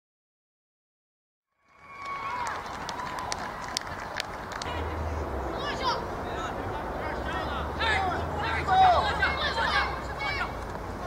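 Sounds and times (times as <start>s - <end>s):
distant voices: 1.7s - 11.0s.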